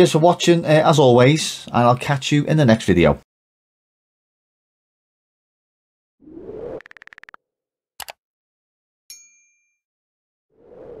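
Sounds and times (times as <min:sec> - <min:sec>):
bright bell ding: 0:09.1 - 0:09.8.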